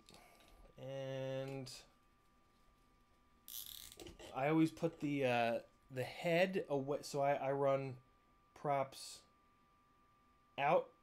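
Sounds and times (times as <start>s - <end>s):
faint steady whine: 0.0s - 11.0s.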